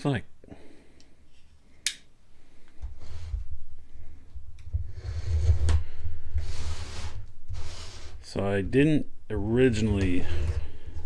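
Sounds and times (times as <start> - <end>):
long hissy scrape: 6.4 - 8.2.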